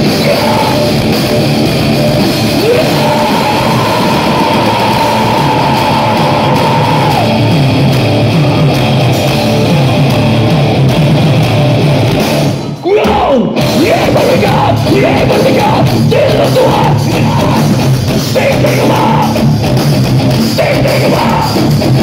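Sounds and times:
bass guitar: 0:00.0 - 0:22.0
distorted electric guitar: 0:00.0 - 0:22.0
drums: 0:00.0 - 0:22.0.

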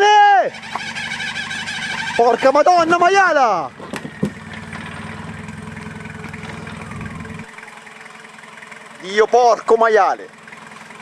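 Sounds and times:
off-road vehicle engine idling: 0:00.0 - 0:11.0.

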